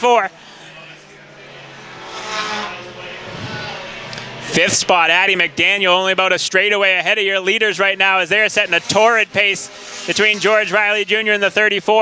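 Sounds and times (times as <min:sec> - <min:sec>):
race car engines at speed: 0:00.0 - 0:12.0.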